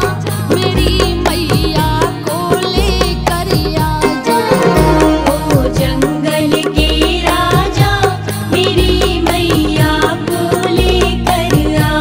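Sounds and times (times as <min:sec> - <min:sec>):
devotional music: 0:00.0 - 0:12.0.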